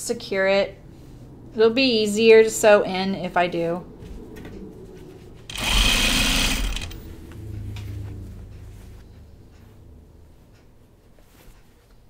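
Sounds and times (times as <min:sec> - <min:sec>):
low quiet hum: 0:00.0 - 0:12.0
sewing machine stitching: 0:05.5 - 0:07.0.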